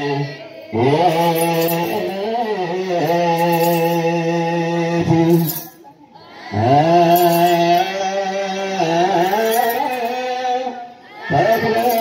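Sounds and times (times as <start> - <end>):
voices chanting: 0.0 - 3.7, 5.0 - 12.0.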